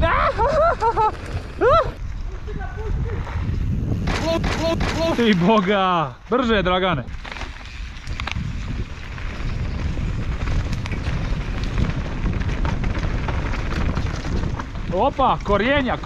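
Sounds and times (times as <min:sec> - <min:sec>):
wind rumble on microphone: 0:00.0 - 0:05.6, 0:06.4 - 0:16.0
bike tyre noise: 0:00.0 - 0:16.0
bike clicks and rattles: 0:00.5 - 0:05.8, 0:07.1 - 0:16.0
rider shouting: 0:04.1 - 0:06.1.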